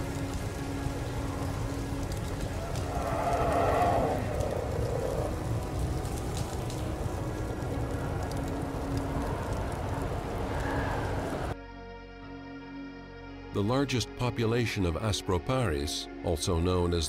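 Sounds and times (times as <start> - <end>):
rain pattering: 0.0 - 11.6.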